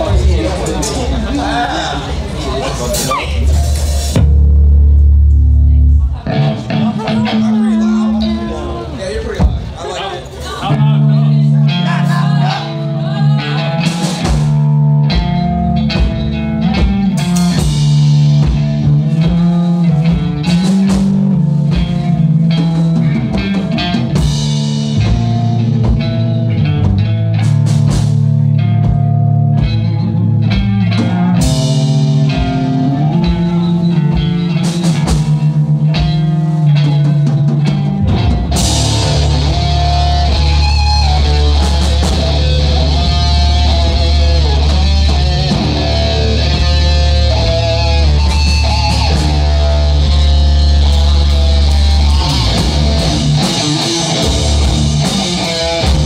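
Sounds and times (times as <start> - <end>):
driving drum beat: 0.0 - 10.0, 10.6 - 56.0
rock band playing: 0.0 - 56.0.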